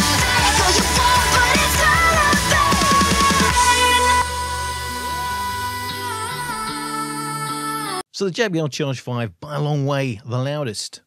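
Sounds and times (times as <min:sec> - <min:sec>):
music from a portable speaker: 0:00.0 - 0:08.0.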